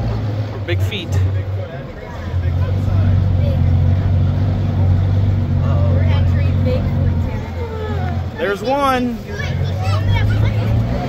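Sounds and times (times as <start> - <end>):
truck engine droning: 0.0 - 11.0
faint voices: 0.3 - 11.0.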